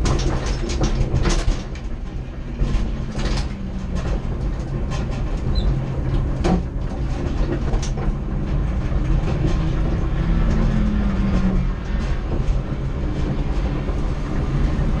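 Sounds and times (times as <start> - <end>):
car low rumble: 0.0 - 15.0
interior rattling and clicking: 0.0 - 15.0
low hum: 0.0 - 15.0.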